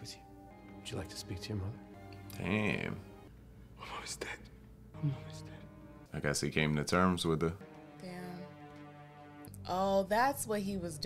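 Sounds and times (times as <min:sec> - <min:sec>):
breathy whisper: 0:03.8 - 0:05.7.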